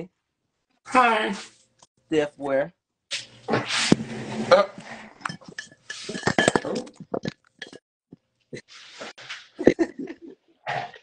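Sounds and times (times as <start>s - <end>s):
objects clinking and knocking: 5.1s - 7.8s.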